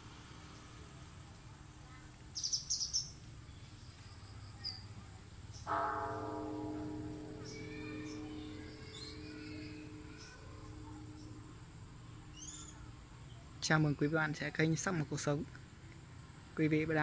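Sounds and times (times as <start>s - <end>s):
birds chirping: 2.3s - 15.3s
large bell ringing: 5.6s - 13.4s.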